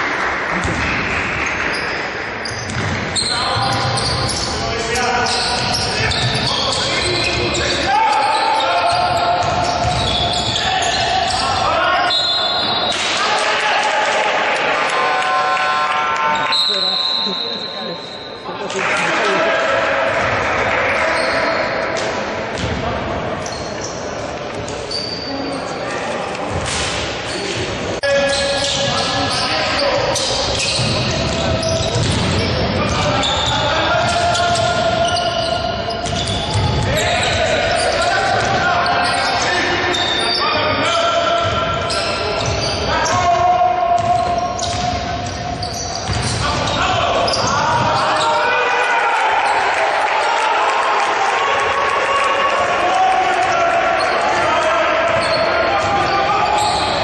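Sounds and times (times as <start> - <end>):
players calling out: 0.0 - 57.0
sneakers squeaking: 0.5 - 13.2, 20.2 - 48.6, 53.4 - 57.0.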